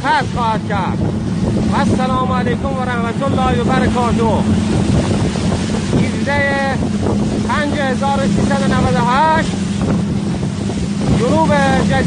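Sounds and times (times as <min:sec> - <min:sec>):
rushing water: 0:00.0 - 0:12.0
speedboat engine running: 0:00.0 - 0:12.0
wind buffeting microphone: 0:00.0 - 0:12.0.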